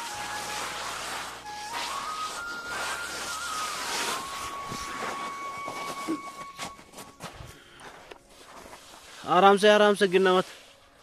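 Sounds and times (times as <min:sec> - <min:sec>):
footsteps on frozen snow: 0:00.0 - 0:11.0.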